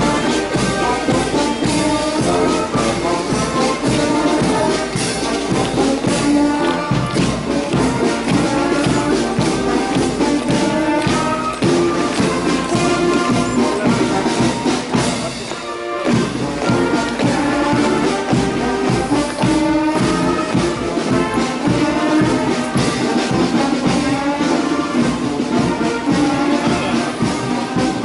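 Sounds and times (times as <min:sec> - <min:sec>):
brass band playing a march: 0:00.0 - 0:28.0
drum and cymbal beat: 0:00.0 - 0:28.0.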